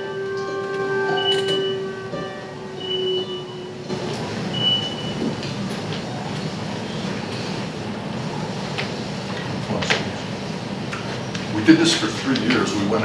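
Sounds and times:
steady noisy rumble: 0:00.0 - 0:13.0.

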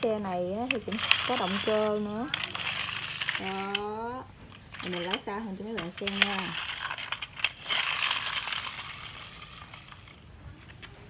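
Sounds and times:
toy motor whirring: 0:00.0 - 0:10.9
toy rolling on concrete: 0:00.0 - 0:11.0.

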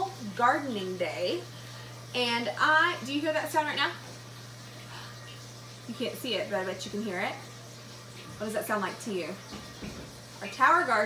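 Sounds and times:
pump humming: 0:00.0 - 0:11.0
water trickling: 0:00.0 - 0:11.0.

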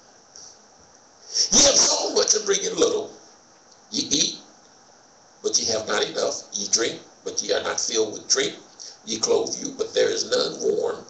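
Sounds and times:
man speaking: 0:01.3 - 0:03.2, 0:03.9 - 0:04.5, 0:05.4 - 0:11.0.

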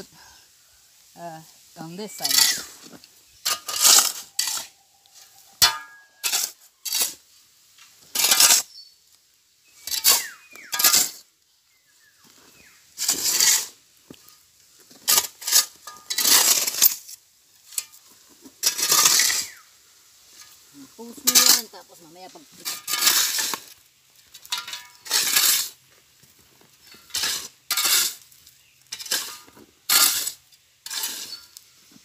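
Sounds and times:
shovels scraping gravel and cement: 0:01.8 - 0:08.8, 0:09.8 - 0:11.3, 0:12.0 - 0:32.0.

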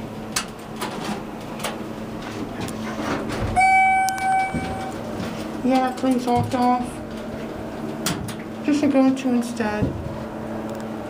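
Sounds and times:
elevator electronic chime: 0:03.6 - 0:05.1.

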